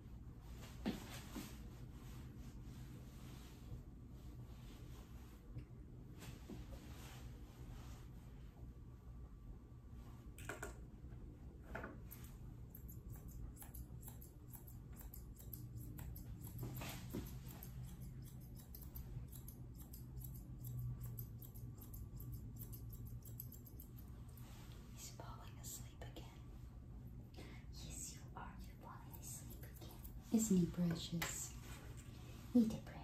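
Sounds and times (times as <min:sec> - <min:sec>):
low steady hum: 0:00.0 - 0:33.0
scissors snipping: 0:12.7 - 0:24.0.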